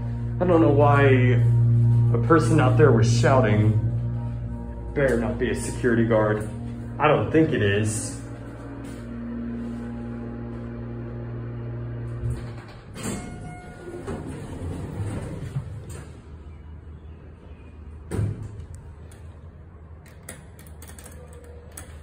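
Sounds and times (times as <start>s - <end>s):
sliding door rumble: 0.0s - 16.8s
elevator hum: 0.0s - 22.0s
doors shutting with a thud: 18.0s - 18.7s.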